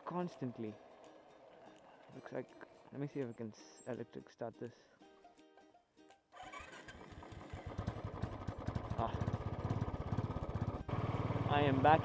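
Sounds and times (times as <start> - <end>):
electric starter cranking: 6.4 - 11.4
motorcycle engine running: 6.4 - 12.0.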